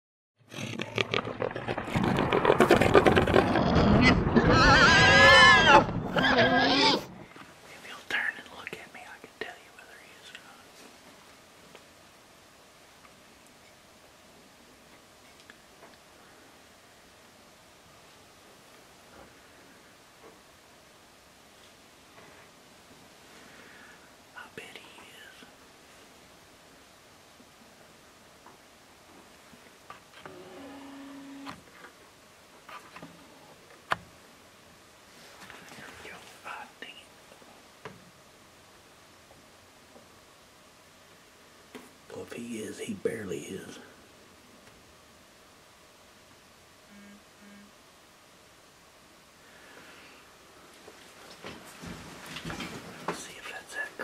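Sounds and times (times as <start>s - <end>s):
loud rumbling roar: 1.2s - 7.2s.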